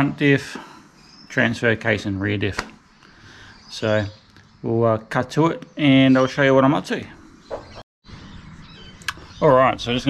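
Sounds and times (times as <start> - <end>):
faint bird chirps: 0.4 - 10.0.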